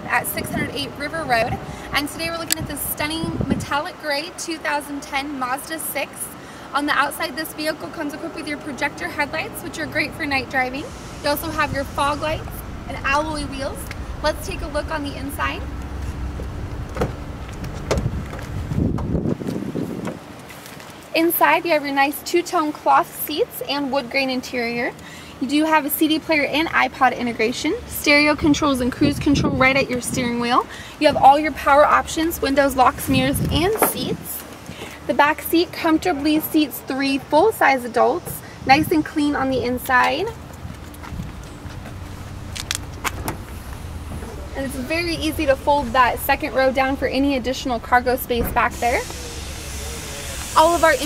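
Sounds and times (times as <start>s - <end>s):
low outdoor rumble: 0.0s - 20.4s, 23.6s - 51.0s
car door latch clicks: 42.6s - 43.5s.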